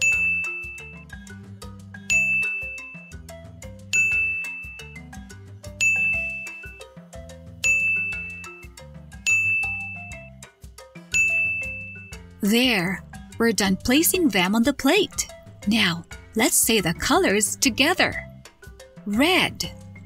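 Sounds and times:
cheerful background music: 0:00.0 - 0:20.0
bright chime: 0:02.1 - 0:03.2, 0:03.9 - 0:05.1, 0:05.8 - 0:06.9, 0:07.6 - 0:10.3, 0:11.1 - 0:12.2.

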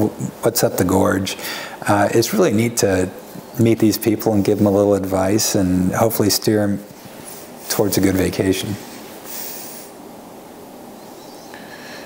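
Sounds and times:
person breathing through nose: 0:01.4 - 0:01.8.

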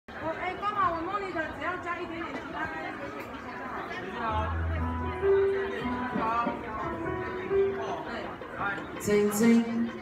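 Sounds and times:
indistinct chatter of people: 0:00.1 - 0:10.0.

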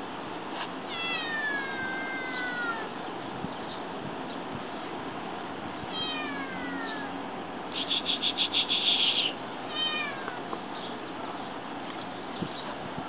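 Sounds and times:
kitten meowing: 0:00.9 - 0:02.9, 0:05.9 - 0:07.1, 0:09.0 - 0:10.4
high-pitched kitten trill: 0:05.9 - 0:07.1, 0:07.8 - 0:10.4.

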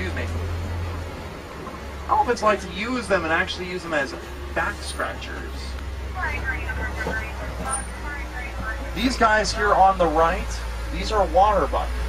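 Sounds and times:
people talking: 0:00.0 - 0:00.4, 0:02.1 - 0:11.9
truck engine rumble: 0:00.0 - 0:12.0.

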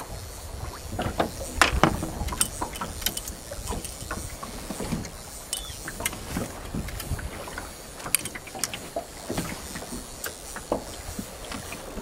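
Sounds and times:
wind on microphone: 0:00.0 - 0:08.0
water slapping against hull: 0:00.0 - 0:12.0
short knocks: 0:01.2 - 0:02.2.

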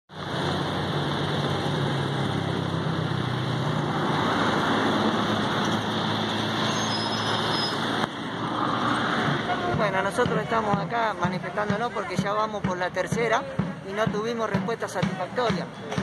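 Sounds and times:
highway traffic passing: 0:00.1 - 0:16.0.

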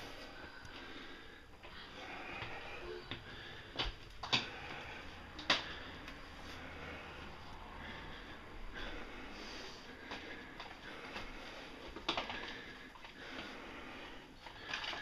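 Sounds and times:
close breathing and sniffing: 0:00.0 - 0:15.0.

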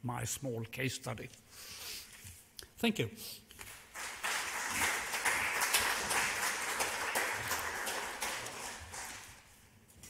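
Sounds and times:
audience applauding: 0:03.6 - 0:09.5.

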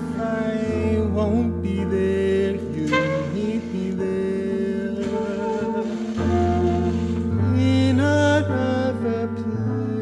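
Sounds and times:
electric keyboard chords: 0:00.0 - 0:10.0
saxophone melody: 0:02.8 - 0:07.6.

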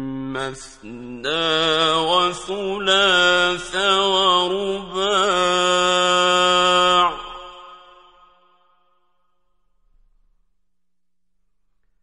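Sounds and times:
man reciting in chant: 0:00.0 - 0:08.1
echo: 0:00.0 - 0:12.0.

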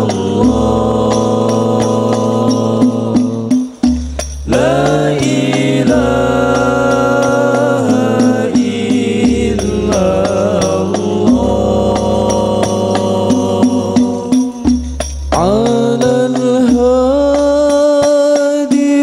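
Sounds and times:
man singing devotional song: 0:00.0 - 0:19.0.

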